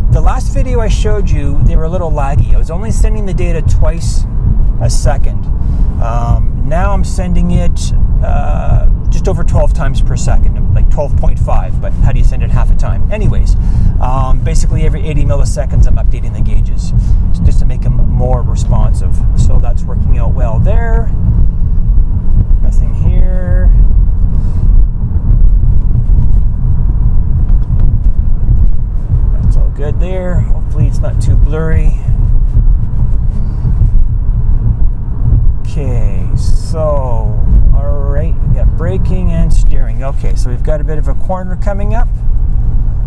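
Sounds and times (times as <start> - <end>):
car cabin road and engine rumble: 0.0 - 43.0.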